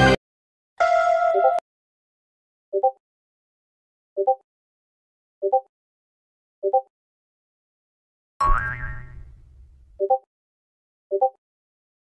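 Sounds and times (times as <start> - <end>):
comedic boing sound effect: 8.4 - 9.4.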